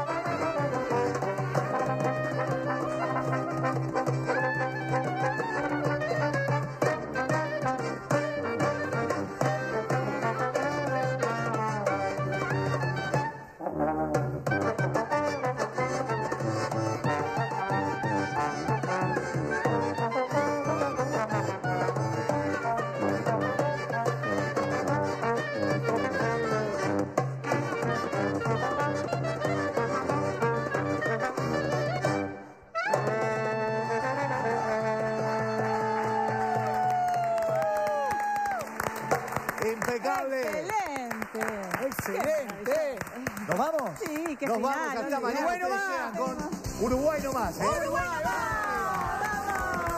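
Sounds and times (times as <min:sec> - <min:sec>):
accordion: 0:00.0 - 0:36.6
goblet drum: 0:00.0 - 0:36.6, 0:46.1 - 0:49.9
trombone: 0:00.0 - 0:36.7
clarinet: 0:00.0 - 0:39.5.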